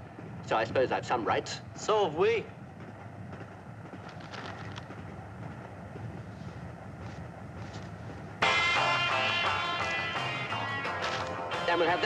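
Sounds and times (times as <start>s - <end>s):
train rumbling: 0.0s - 12.0s
faint clicks: 3.9s - 6.2s.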